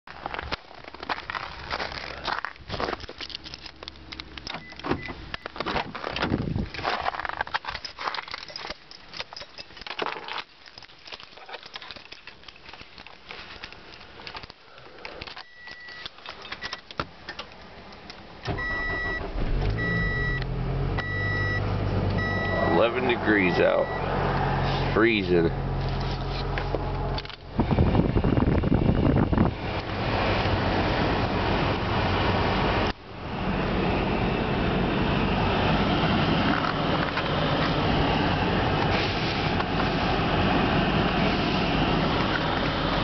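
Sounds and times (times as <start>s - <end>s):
keys rattling: 2.4s - 4.8s, 6.7s - 14.5s, 15.1s - 16.9s
car engine starting and idling: 15.1s - 43.0s
dashboard chime beeping: 19.8s - 20.4s, 21.0s - 21.6s, 22.2s - 24.1s.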